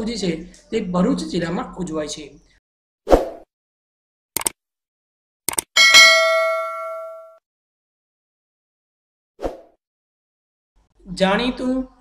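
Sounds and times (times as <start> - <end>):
notification bell ding: 5.8 - 7.4.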